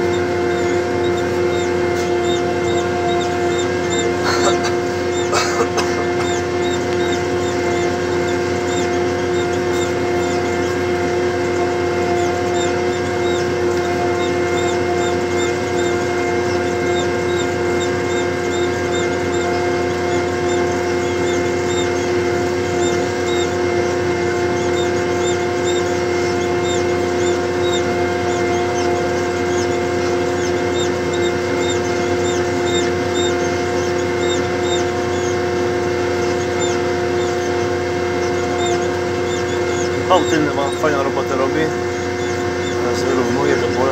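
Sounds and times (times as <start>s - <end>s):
tractor engine droning: 0.0s - 43.9s.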